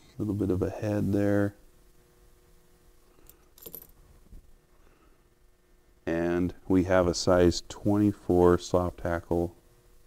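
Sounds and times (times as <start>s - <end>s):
metal clink: 3.6s - 4.0s.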